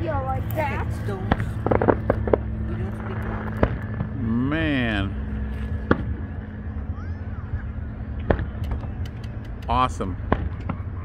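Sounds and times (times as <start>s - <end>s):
steady low hum: 0.0s - 11.0s
distant fireworks bursting: 1.2s - 4.2s, 5.7s - 6.9s, 7.5s - 11.0s.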